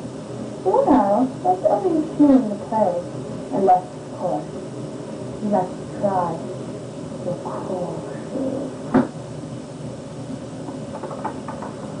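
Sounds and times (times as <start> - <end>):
cassette tape hiss: 0.0 - 12.0.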